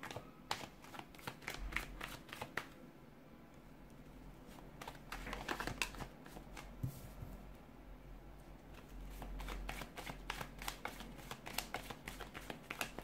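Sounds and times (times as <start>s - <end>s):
cards being shuffled: 0.0s - 2.7s, 4.8s - 6.8s, 8.8s - 13.0s.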